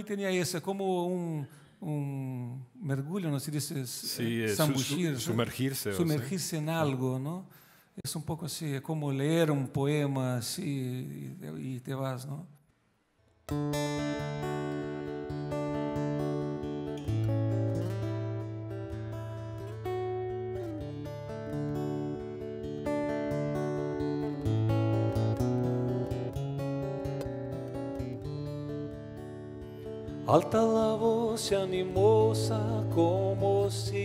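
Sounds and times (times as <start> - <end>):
fingerpicked acoustic guitar: 13.4 - 34.0.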